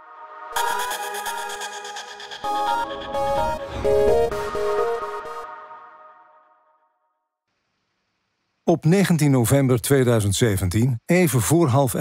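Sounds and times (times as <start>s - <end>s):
electronic jingle chord: 0.5s - 6.4s.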